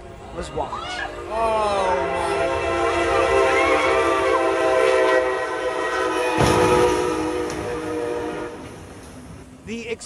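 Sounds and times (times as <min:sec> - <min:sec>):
train horn blast: 0:01.1 - 0:09.0
loud crash: 0:06.3 - 0:08.0.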